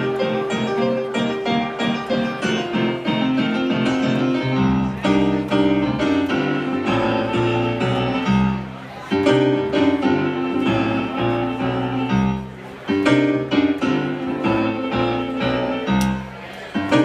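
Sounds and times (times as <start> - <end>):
stage piano chords: 0.0 - 17.0.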